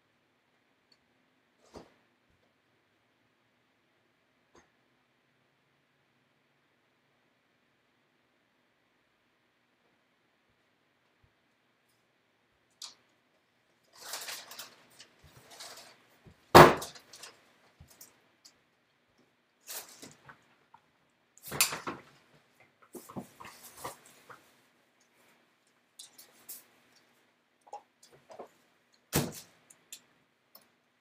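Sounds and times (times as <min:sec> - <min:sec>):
rustling: 0:13.8 - 0:18.1, 0:21.4 - 0:27.3.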